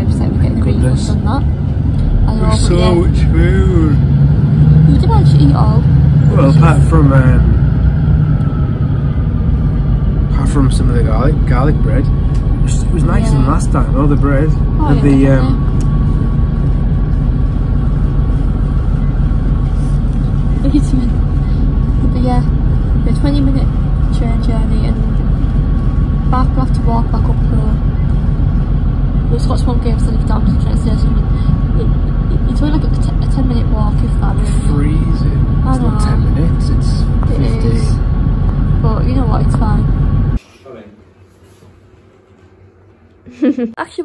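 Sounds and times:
train rumbling: 0.0s - 40.4s
high whine: 0.0s - 41.1s.

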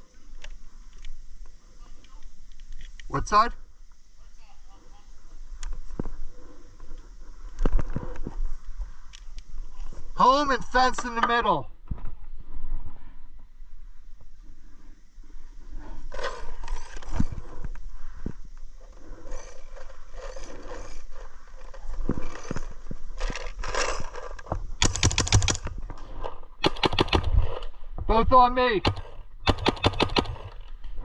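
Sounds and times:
gear scraping and rustling: 15.7s - 26.6s
paintball markers firing: 24.8s - 25.7s, 26.6s - 27.7s, 28.8s - 30.8s.

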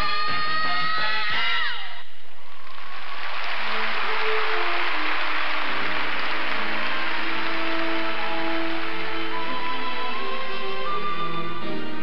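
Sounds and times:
audience applauding: 2.5s - 11.8s
slow music with held notes: 4.0s - 12.0s.

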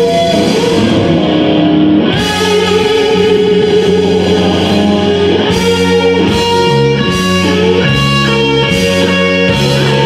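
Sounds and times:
bass: 0.0s - 10.0s
drums: 0.0s - 10.0s
electric guitar: 0.0s - 10.0s.

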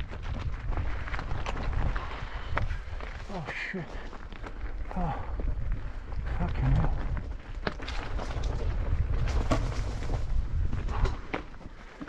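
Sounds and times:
wind buffeting microphone: 0.0s - 11.8s
tyres rolling over rock and dirt: 0.0s - 12.0s
bike knocking and rattling on rocks: 4.1s - 12.0s.

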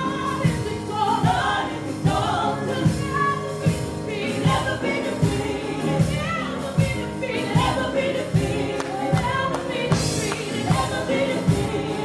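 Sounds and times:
keyboard accompaniment: 0.0s - 12.0s
women singing gospel song: 0.0s - 12.0s.

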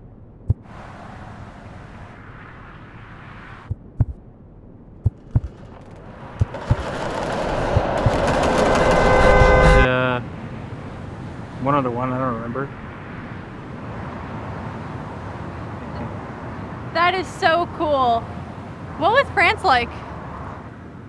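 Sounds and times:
heartbeat thumps: 3.7s - 4.2s, 5.0s - 6.8s
fast rattle: 5.2s - 9.9s.

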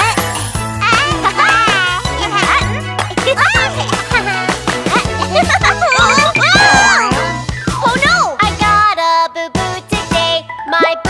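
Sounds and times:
cartoon music with bass line: 5.4s - 7.4s.

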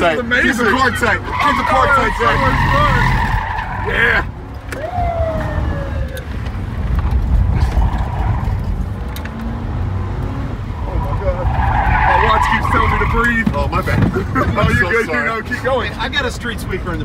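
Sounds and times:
car engine and road rumble: 0.0s - 17.0s
tyre squeal: 10.8s - 13.4s.

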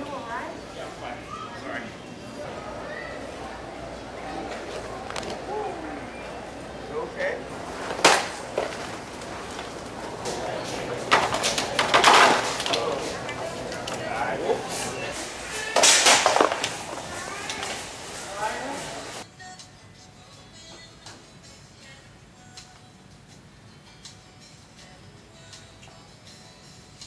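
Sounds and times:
shoppers' voices: 0.0s - 19.2s
background music: 19.2s - 27.0s.

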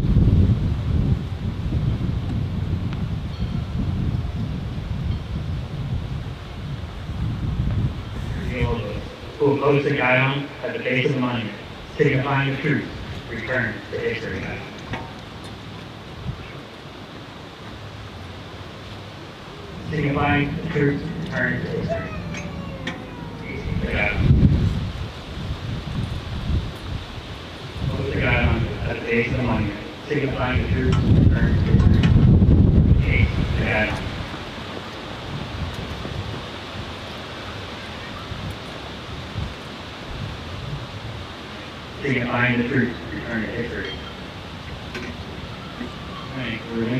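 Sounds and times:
wind noise on microphone: 0.0s - 43.0s
steady outdoor hiss: 0.0s - 46.9s.

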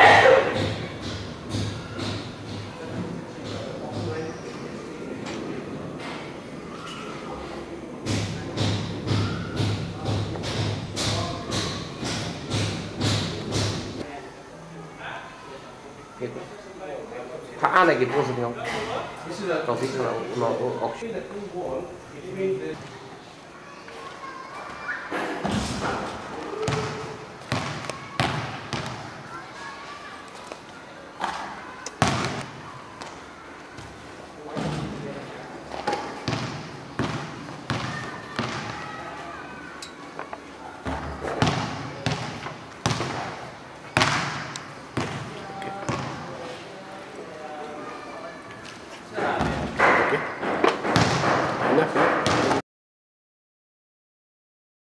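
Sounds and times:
people's voices in a hall: 0.0s - 52.6s
basketball thudding: 26.6s - 29.0s, 36.2s - 38.7s, 40.8s - 43.4s, 44.0s - 46.2s, 50.8s - 51.5s, 52.2s - 52.6s.

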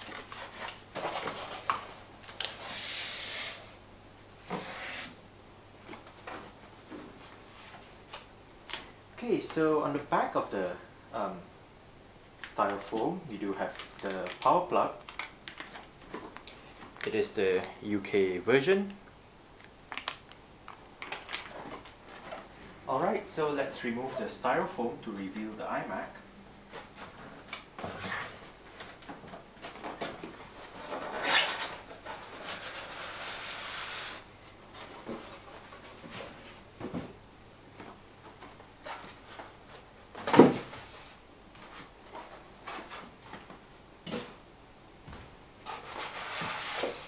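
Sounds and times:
cardboard scraping on foam: 45.6s - 47.0s.

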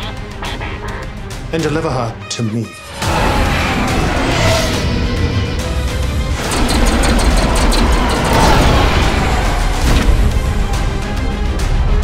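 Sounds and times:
fighter craft rushing howl: 2.9s - 12.0s.

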